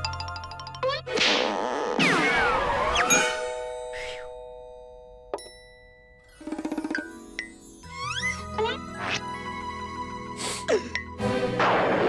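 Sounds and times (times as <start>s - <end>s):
music: 0.0s - 1.3s, 5.4s - 12.0s
held chime chord: 3.1s - 6.4s.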